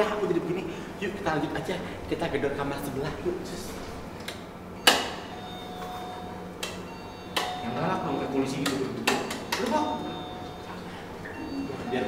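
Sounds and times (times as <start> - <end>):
electronic doorbell tone: 4.8 - 8.6, 9.4 - 12.0.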